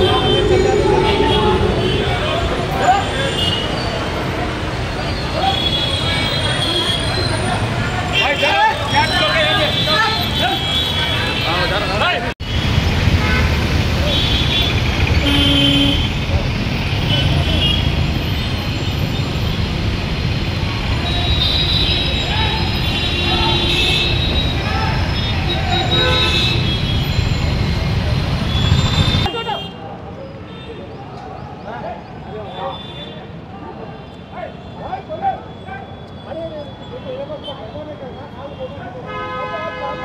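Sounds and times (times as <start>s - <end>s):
vehicle horns tooting: 0.0s - 4.2s, 4.9s - 16.3s, 17.0s - 19.4s, 20.9s - 29.8s, 34.6s - 40.0s
people's voices: 0.0s - 12.4s
street traffic: 0.0s - 40.0s.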